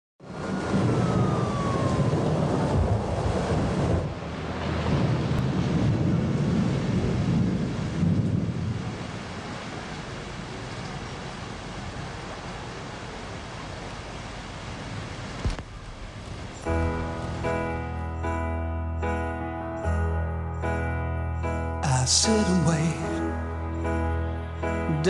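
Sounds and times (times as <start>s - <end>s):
deep rolling rumble: 0.3s - 20.4s.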